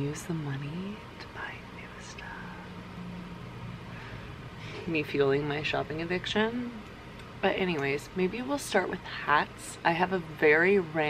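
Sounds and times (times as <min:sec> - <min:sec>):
air purifier fan humming: 0:00.0 - 0:11.0
person whispering: 0:01.2 - 0:02.7.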